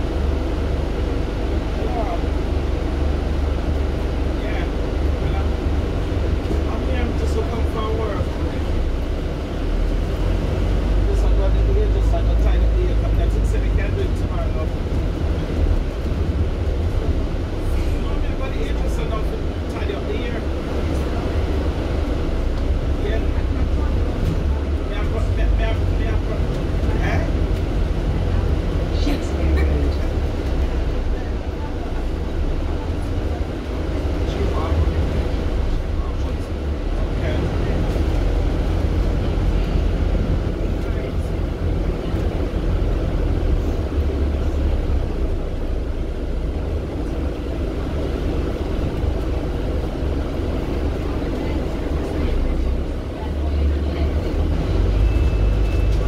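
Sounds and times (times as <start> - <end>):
bus engine rumble: 0.0 - 56.0
road noise: 0.0 - 56.0.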